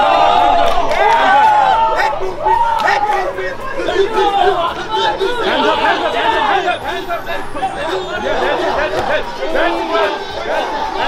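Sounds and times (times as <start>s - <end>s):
men talking over one another: 0.0s - 11.0s.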